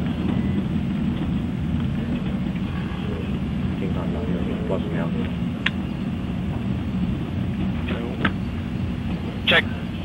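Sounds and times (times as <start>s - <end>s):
rocket engines rumbling: 0.0s - 10.0s
radio talk: 9.3s - 9.9s.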